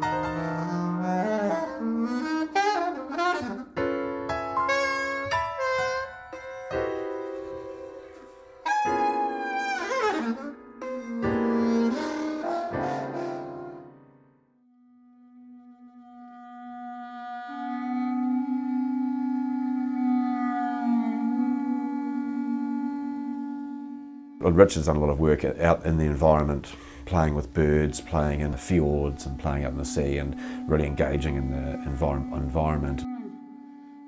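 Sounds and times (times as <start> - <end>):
saxophone improvising: 0.0 - 4.0, 4.6 - 14.1, 15.1 - 24.6, 26.0 - 34.0
grand piano: 0.0 - 14.6.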